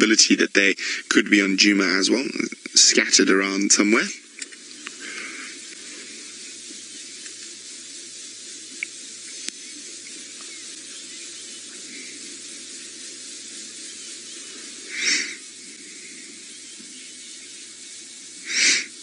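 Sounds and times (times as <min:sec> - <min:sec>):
outdoor ambient hiss: 0:00.0 - 0:19.0
faint ticks: 0:04.3 - 0:19.0
breathy rustle: 0:04.6 - 0:06.6, 0:11.7 - 0:16.7.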